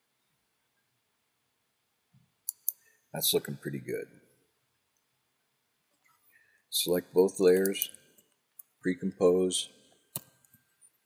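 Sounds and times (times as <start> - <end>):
computer mouse clicks: 2.4 - 2.9, 10.1 - 10.6.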